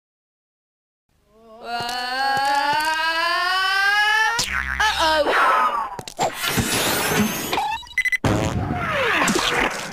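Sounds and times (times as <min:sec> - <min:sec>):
rising cartoon tone: 0:01.7 - 0:06.0.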